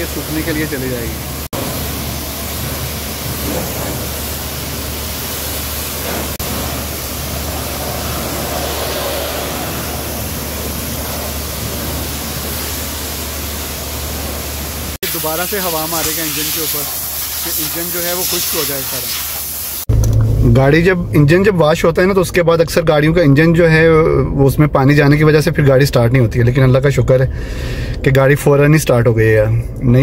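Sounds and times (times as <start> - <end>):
pressure washer spraying water: 0.0 - 19.9
low hum: 3.6 - 14.9, 19.9 - 21.6.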